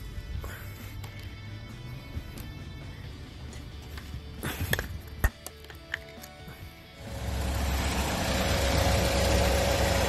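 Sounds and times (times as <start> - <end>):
car engine idling: 7.0 - 10.0.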